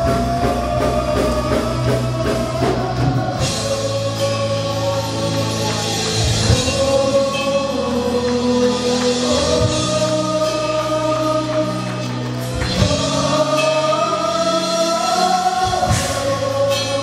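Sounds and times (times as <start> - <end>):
worship band singers: 0.0 - 17.0.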